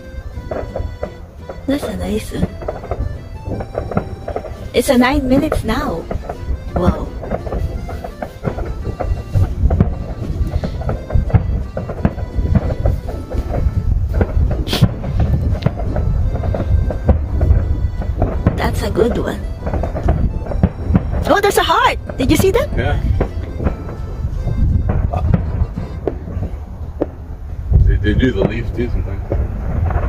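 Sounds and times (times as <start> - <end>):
distant fireworks booming: 0.0 - 30.0
fireworks cracks: 0.0 - 30.0.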